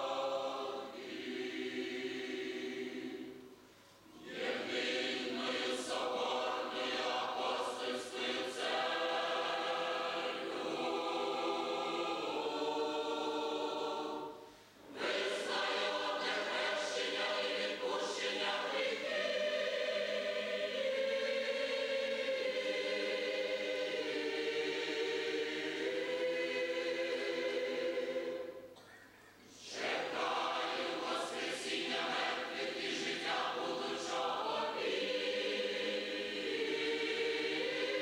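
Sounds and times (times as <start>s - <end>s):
choir singing a hymn: 0.0s - 28.8s, 29.5s - 38.0s.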